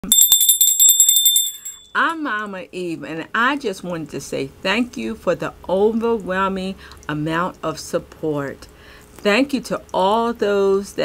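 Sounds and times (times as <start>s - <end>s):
small bell ringing: 0.0s - 2.2s.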